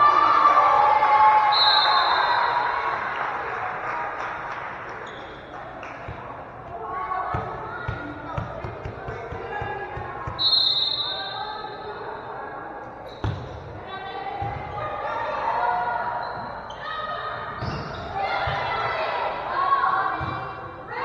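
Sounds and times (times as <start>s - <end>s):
spectators' voices echoing: 0.0s - 21.0s
referee's whistle: 1.5s - 2.6s, 10.4s - 11.4s.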